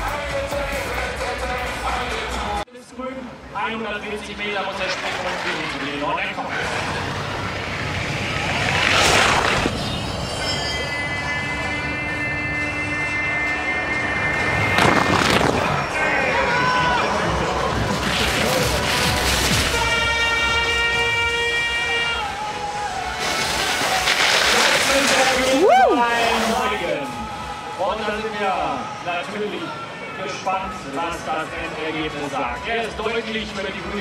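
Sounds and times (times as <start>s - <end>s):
crowd noise: 0.0s - 34.0s
skis rushing down track: 4.4s - 9.9s, 17.7s - 21.1s, 21.9s - 27.6s
air horn blasts: 19.7s - 23.7s.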